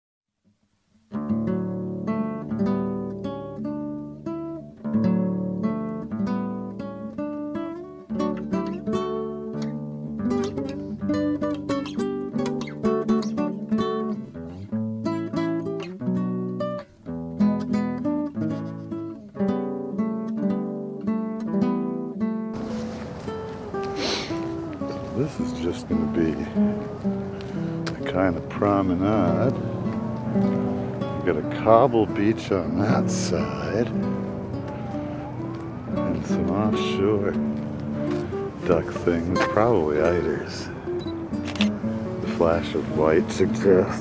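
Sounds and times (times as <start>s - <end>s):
acoustic guitar music: 0.9s - 44.0s
steady hiss: 22.6s - 27.9s.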